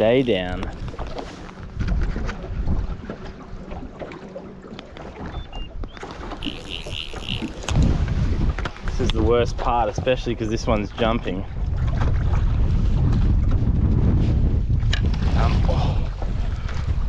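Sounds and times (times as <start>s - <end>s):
wind gusting on microphone: 0.0s - 3.2s, 5.3s - 17.0s
water slapping against boat hull: 11.0s - 14.1s.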